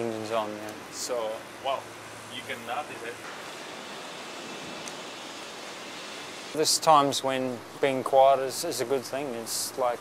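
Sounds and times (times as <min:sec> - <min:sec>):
steady hiss of ferry background noise: 0:00.0 - 0:10.0.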